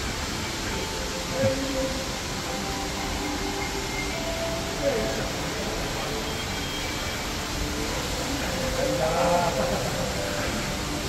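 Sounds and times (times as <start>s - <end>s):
even hiss: 0.0s - 11.0s
faint distant voices: 0.0s - 11.0s.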